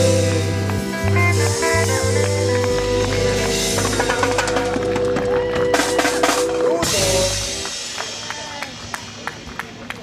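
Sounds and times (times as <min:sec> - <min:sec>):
reggae band playing: 0:00.0 - 0:10.0.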